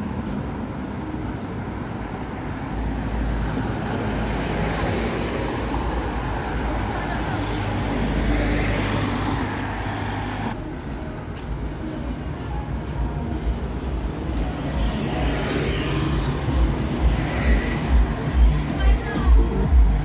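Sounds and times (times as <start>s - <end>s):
cars and motorbikes passing: 0.0s - 20.0s.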